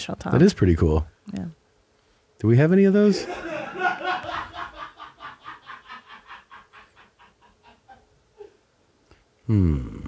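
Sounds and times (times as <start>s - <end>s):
person chuckling: 3.2s - 8.6s, 9.5s - 10.0s.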